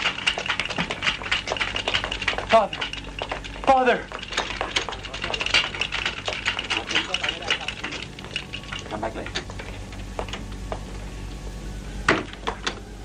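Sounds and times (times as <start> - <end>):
stretcher clattering: 0.0 - 10.4
hurried footsteps: 0.0 - 11.1.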